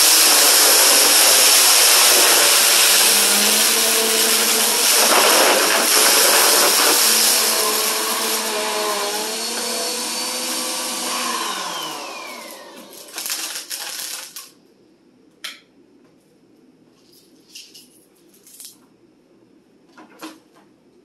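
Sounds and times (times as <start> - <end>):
vacuum cleaner running over carpet: 0.0 - 14.1.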